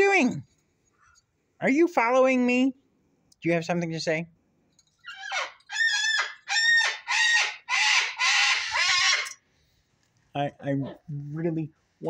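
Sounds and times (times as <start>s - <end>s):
parrot squawking: 5.0s - 9.4s.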